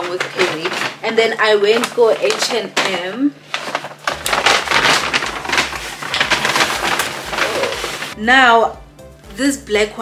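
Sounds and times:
paper bag rustling: 0.0s - 8.2s.

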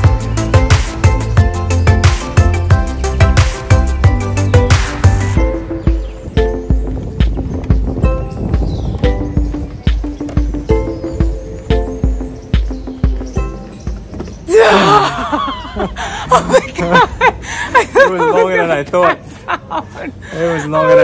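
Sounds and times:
background music with steady beat: 0.0s - 15.4s.

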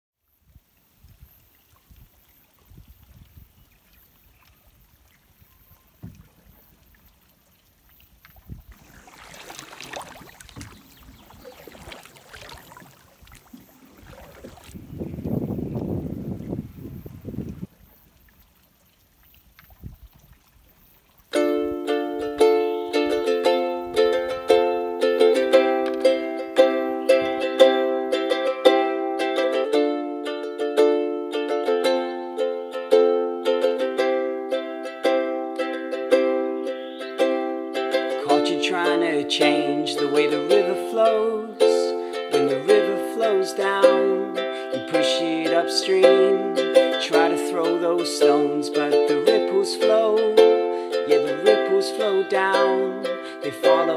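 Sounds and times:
ukulele strumming chords: 21.3s - 53.9s.

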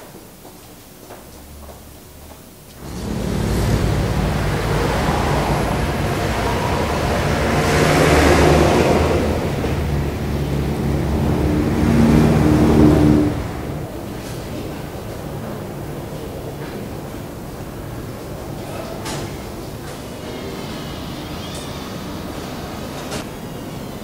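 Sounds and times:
vehicles passing: 2.8s - 24.0s.

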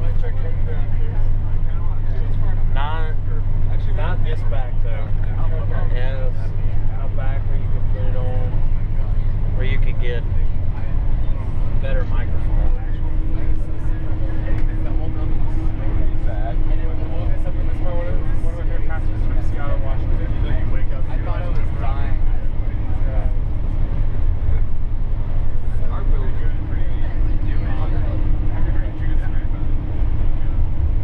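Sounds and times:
bus engine and road noise: 0.0s - 31.0s
people talking indistinctly: 0.0s - 31.0s.

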